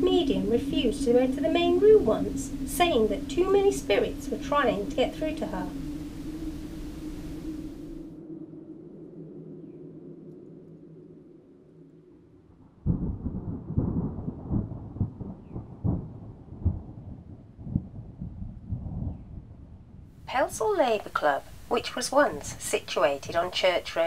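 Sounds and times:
rumble of thunder: 0.0s - 9.8s, 12.5s - 20.2s
low hum: 0.0s - 23.6s.

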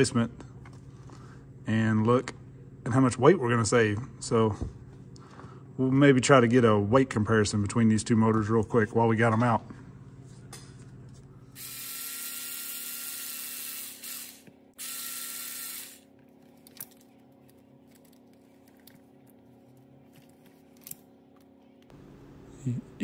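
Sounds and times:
electric screwdriver running: 11.6s - 16.1s.

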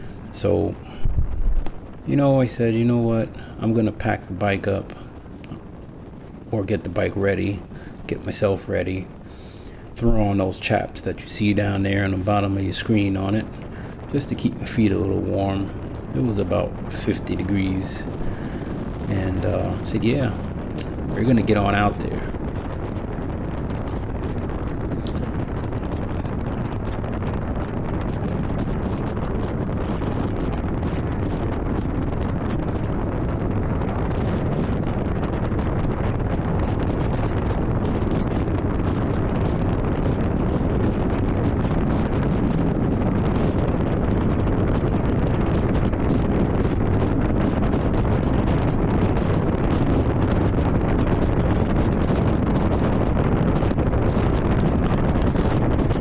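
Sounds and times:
wind rushing over microphone: 0.0s - 56.0s.

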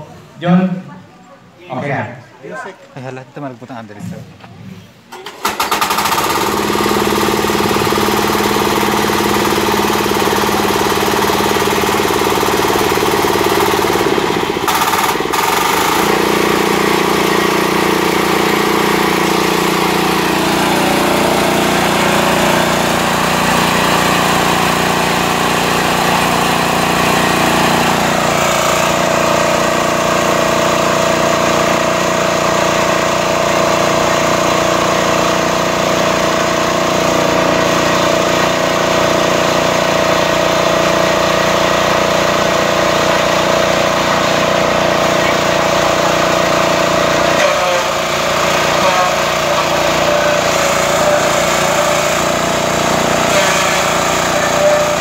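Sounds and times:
small engine running: 5.1s - 55.0s.

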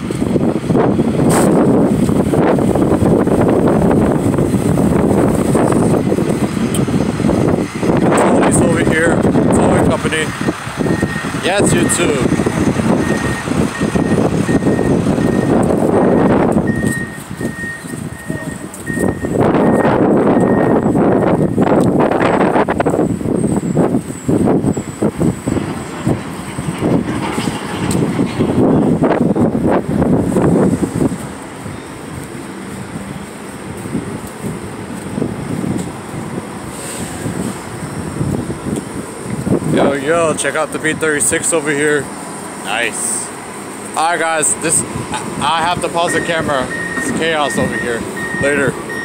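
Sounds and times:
vehicles passing: 0.0s - 49.0s
repeating high beep: 10.3s - 12.2s, 13.0s - 21.5s, 46.0s - 49.0s.

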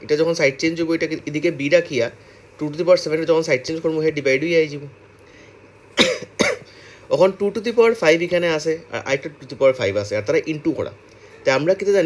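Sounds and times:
man speaking: 0.0s - 5.0s, 7.1s - 12.0s
man clearing his throat: 6.0s - 6.8s.

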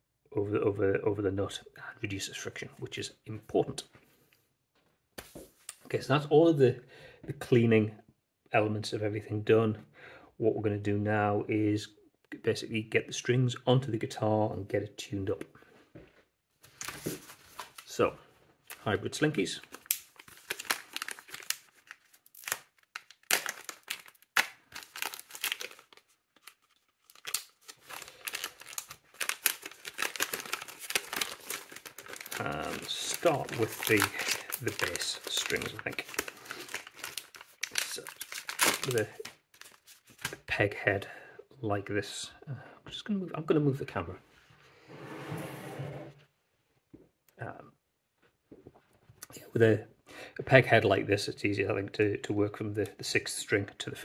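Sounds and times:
foil packet crinkling: 18.7s - 40.4s
knife cutting foil packet: 19.7s - 40.3s.

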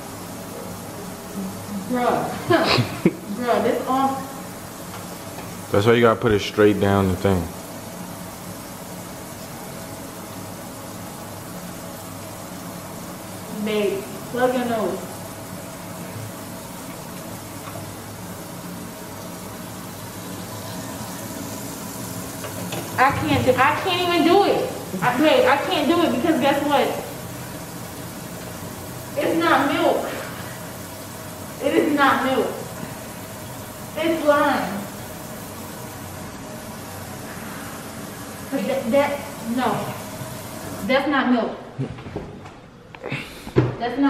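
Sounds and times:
faucet running into metal sink: 10.9s - 40.9s.

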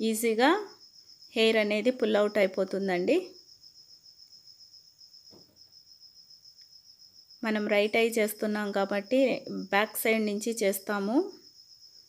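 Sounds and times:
woman's voice: 0.0s - 3.4s, 7.4s - 11.4s
high-pitched insect-like trill: 0.0s - 12.0s.

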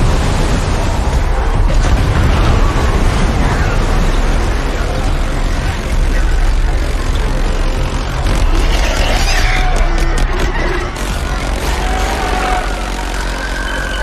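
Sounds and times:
heavy surf crashing: 0.0s - 5.9s
deep continuous rumble: 0.0s - 14.0s.

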